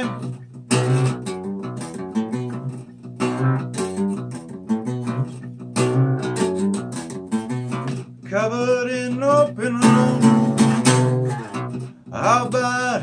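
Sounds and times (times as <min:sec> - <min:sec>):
acoustic guitar chords: 0:00.0 - 0:13.0.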